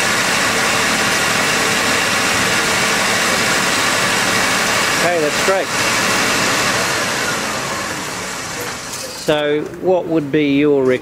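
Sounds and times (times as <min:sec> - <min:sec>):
car engine idling: 0:00.0 - 0:09.7.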